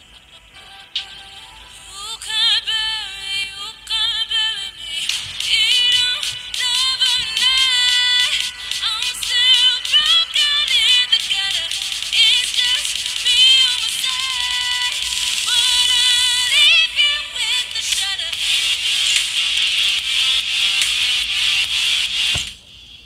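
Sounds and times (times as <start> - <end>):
tinny song from earbud speaker: 0.0 - 23.0.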